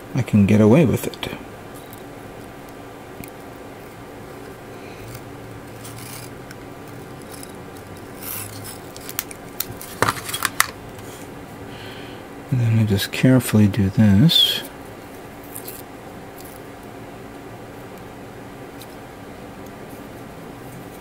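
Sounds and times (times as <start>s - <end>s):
faint steady hum: 0.0s - 21.0s
small crackles and clicks: 1.8s - 10.8s
masking tape rubbing: 5.0s - 10.5s.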